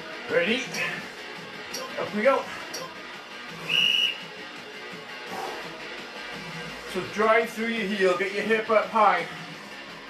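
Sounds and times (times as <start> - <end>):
background music: 0.0 - 10.0
high whistle-like tone: 3.6 - 4.3.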